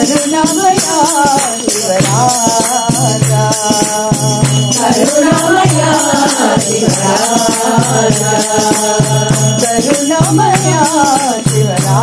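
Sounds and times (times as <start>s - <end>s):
jingling hand percussion: 0.0s - 12.0s
person singing devotional song: 0.0s - 12.0s
held instrumental tones: 4.0s - 11.4s.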